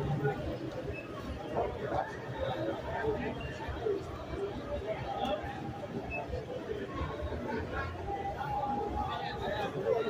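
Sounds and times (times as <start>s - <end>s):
busy street noise: 0.0s - 10.0s
people chattering: 0.0s - 10.0s.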